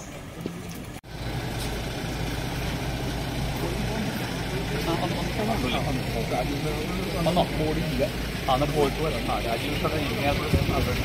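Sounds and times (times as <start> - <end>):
car engine running: 0.9 - 11.0
crowd voices: 2.2 - 11.0.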